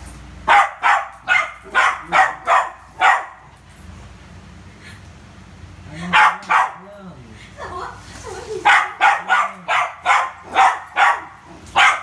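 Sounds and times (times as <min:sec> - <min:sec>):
dog barking sharply: 0:00.4 - 0:03.5, 0:06.1 - 0:06.8, 0:08.6 - 0:12.0.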